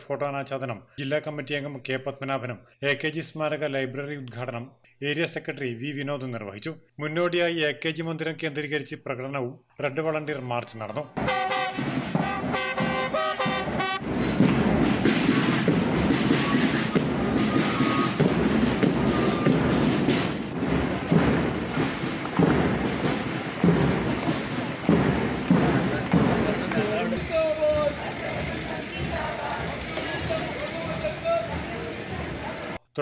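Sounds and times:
street noise: 11.1 - 32.8
crowd noise: 11.2 - 32.8
traffic noise: 11.2 - 32.8
marching feet on road: 11.6 - 32.8
distant voices: 14.1 - 32.8.

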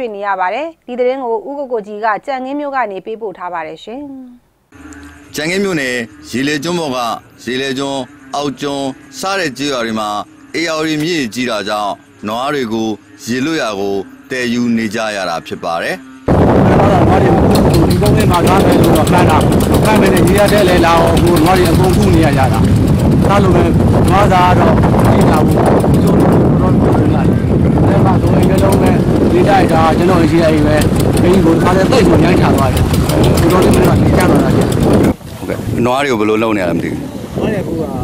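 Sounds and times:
man speaking: 5.3 - 25.6, 26.6 - 34.8
loud low rumble: 16.3 - 35.7.

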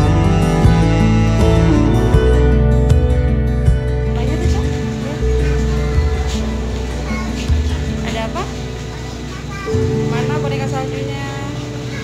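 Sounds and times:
people talking: 4.2 - 12.0.

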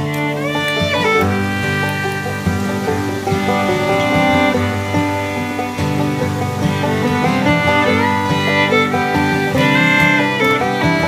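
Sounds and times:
plucked and bowed strings music: 0.0 - 11.0.

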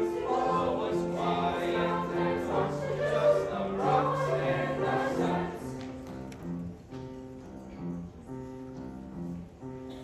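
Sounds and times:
choir singing in harmony: 0.0 - 6.0.

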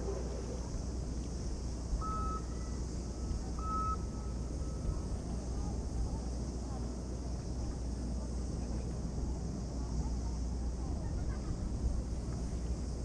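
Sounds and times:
short electronic beeps: 2.0 - 2.5, 3.6 - 4.1.

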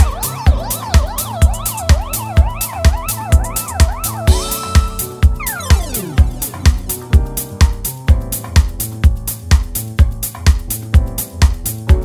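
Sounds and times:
siren-like synth line: 0.0 - 7.2
kick drum beat: 0.0 - 12.0
rising noise sweep: 3.0 - 7.3.

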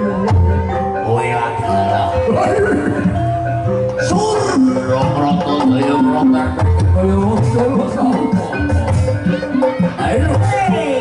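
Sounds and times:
sustained pitched notes: 0.0 - 11.0.

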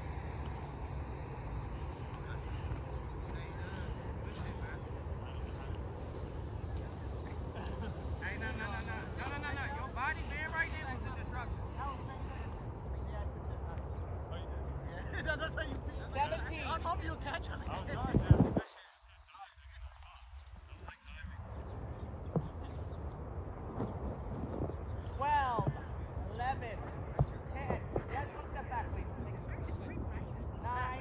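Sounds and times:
steady low rumble: 19.6 - 31.0.

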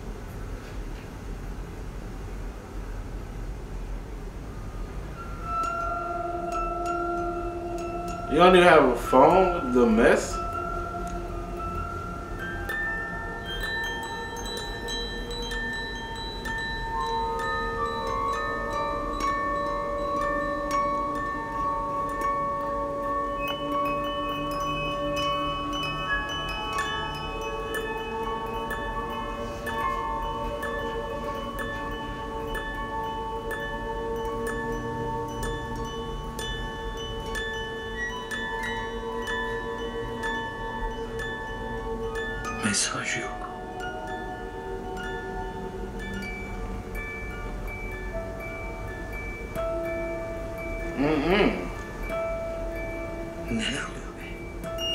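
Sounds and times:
chime-like film music tones: 4.4 - 54.9.

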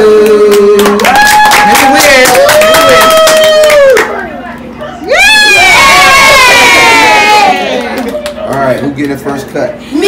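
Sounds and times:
children cheering: 5.1 - 8.1.

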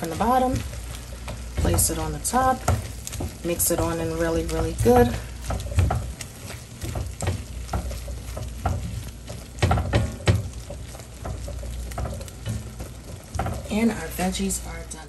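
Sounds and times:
tongs scraping and knocking pan: 0.0 - 15.0
vegetables sizzling in a wok: 0.0 - 15.0.

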